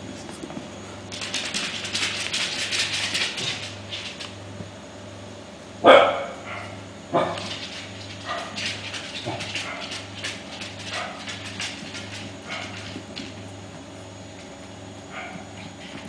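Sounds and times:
puppies barking: 5.8 - 13.1, 15.1 - 16.0.

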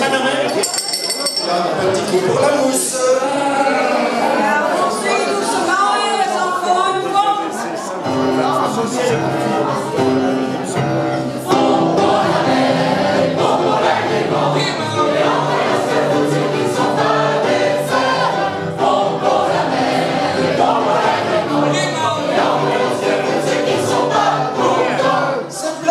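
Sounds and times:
choir singing: 2.0 - 25.9.

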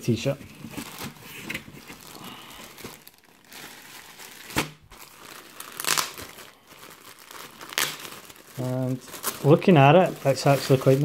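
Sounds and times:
plastic bag crinkling: 0.6 - 11.0.

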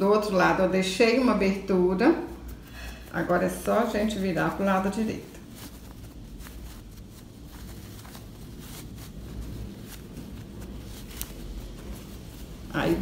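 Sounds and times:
cotton fabric rustling: 0.0 - 13.0
low steady hum: 0.0 - 13.0.

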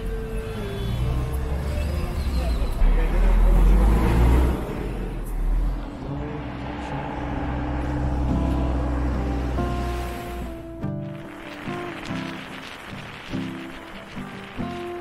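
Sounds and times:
car and bus engines rumbling: 0.0 - 12.4.

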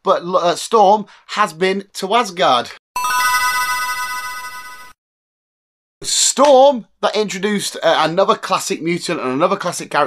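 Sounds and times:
bright bell-like chime: 3.0 - 5.0.

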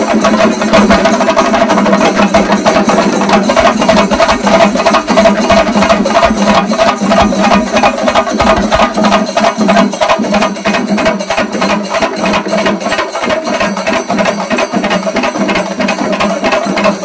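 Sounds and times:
drums beaten rapidly with sticks: 0.0 - 17.0.

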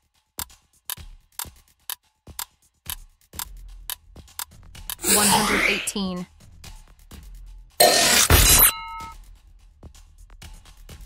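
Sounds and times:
clock-like timer ticks: 0.4 - 5.0.

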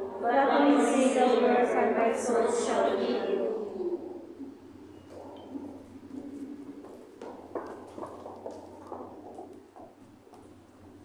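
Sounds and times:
voices in a church: 0.0 - 4.5.

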